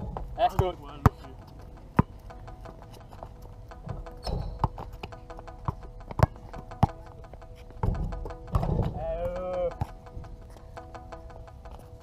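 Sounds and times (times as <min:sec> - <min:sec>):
basketball bouncing on hard court: 0:01.9 - 0:02.3, 0:03.8 - 0:10.0.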